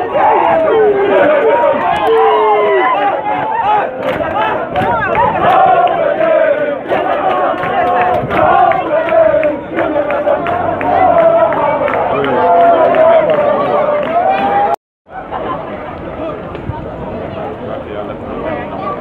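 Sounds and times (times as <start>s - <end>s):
men chanting and shouting: 0.0s - 14.8s.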